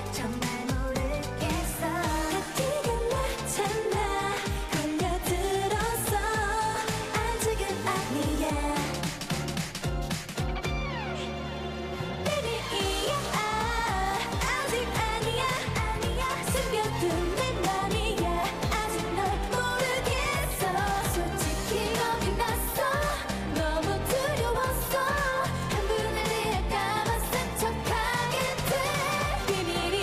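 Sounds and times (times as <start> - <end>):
women singing pop song: 0.0 - 9.6, 12.2 - 30.0
pop backing track: 0.0 - 30.0.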